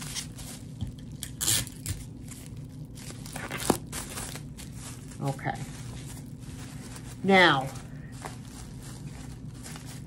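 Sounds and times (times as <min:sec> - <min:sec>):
bubble wrap rustling and crinkling: 0:00.0 - 0:10.0.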